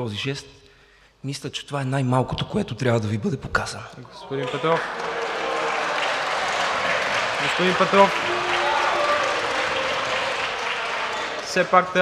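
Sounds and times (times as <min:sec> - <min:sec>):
audience applause: 0:04.3 - 0:12.0.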